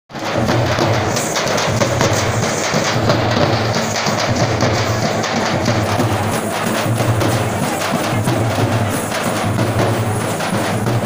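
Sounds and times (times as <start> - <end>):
frame drums beaten with sticks: 0.1 - 11.0.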